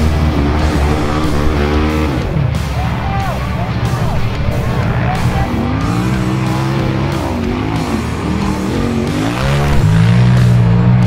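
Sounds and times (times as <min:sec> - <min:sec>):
background music: 0:00.0 - 0:11.0
race car engines revving: 0:00.0 - 0:11.0.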